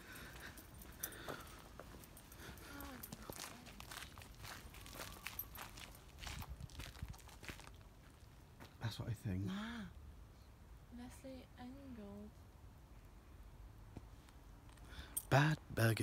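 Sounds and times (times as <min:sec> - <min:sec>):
soft irregular footsteps: 0:00.0 - 0:08.8.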